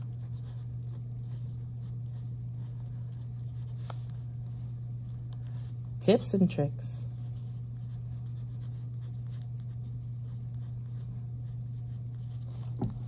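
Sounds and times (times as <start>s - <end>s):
steady low hum: 0.0s - 13.0s
pen scratching on paper: 0.1s - 4.6s, 7.3s - 13.0s.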